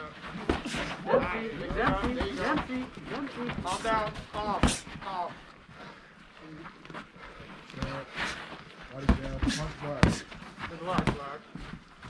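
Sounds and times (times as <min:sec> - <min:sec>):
people shouting: 0:00.6 - 0:02.5.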